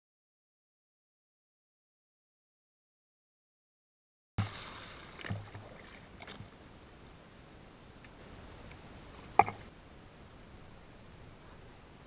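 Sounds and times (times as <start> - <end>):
pool water splashing: 4.4 - 7.1.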